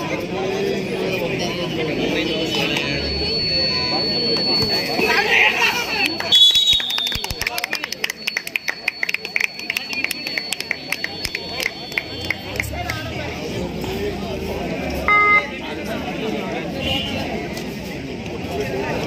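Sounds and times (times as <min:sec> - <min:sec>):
crowd chatter: 0:00.0 - 0:19.0
referee's whistle: 0:03.0 - 0:05.3, 0:06.2 - 0:07.4, 0:15.1 - 0:15.5
quick sharp claps: 0:06.0 - 0:13.0
loud buzzer tone: 0:15.1 - 0:15.5.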